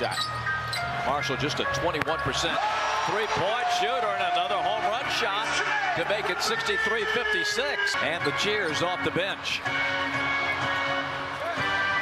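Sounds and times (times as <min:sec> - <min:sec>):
arena music with held notes: 0:00.0 - 0:12.0
crowd noise: 0:00.0 - 0:12.0.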